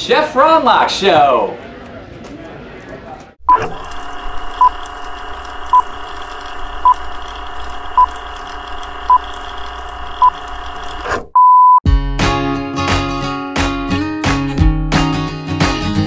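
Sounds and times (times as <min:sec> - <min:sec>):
long beep: 0:11.4 - 0:11.8
short countdown beeps: 0:11.4 - 0:11.8.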